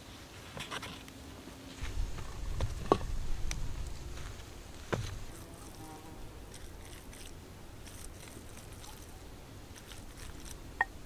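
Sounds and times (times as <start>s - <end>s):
insect buzzing faintly: 0.1s - 11.0s.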